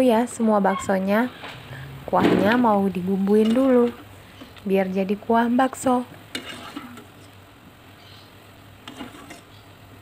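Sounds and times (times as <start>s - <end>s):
skimmer stirring in water: 8.8s - 9.5s.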